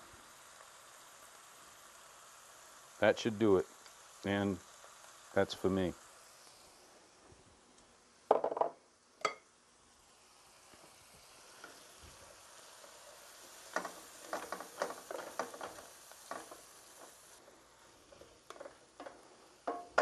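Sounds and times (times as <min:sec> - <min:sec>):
faint sizzle: 0:00.0 - 0:20.0
wooden spoon scraping a pan: 0:13.5 - 0:20.0.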